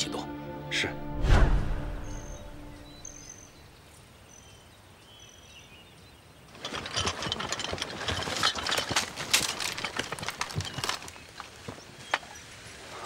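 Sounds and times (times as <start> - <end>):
bird chirps: 1.9 - 6.4
rattling gear: 6.5 - 11.8
hurried footsteps through brush: 8.3 - 13.0.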